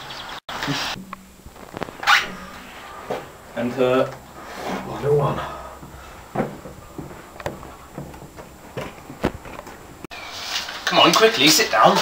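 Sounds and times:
handling knocks and clicks: 0:05.8 - 0:10.1.

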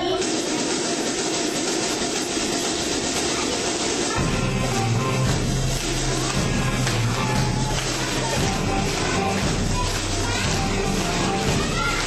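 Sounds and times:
children applauding: 0:03.1 - 0:12.0.

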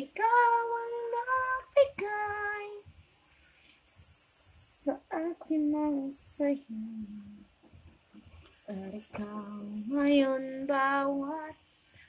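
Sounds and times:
person singing a slow ballad: 0:00.0 - 0:02.8, 0:03.9 - 0:07.5, 0:08.7 - 0:11.6.

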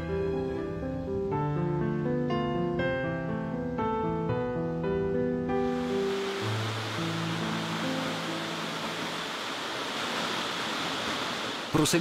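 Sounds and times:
waterfall rushing into pool: 0:05.6 - 0:12.0.

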